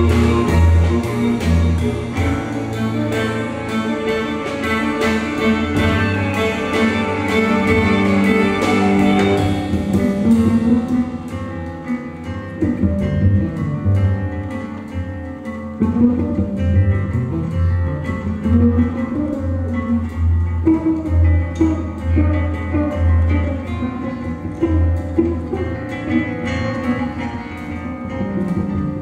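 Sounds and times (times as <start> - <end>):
drums ticking: 0.0 - 18.5
double bass line: 0.0 - 29.0
plucked guitar: 0.0 - 29.0.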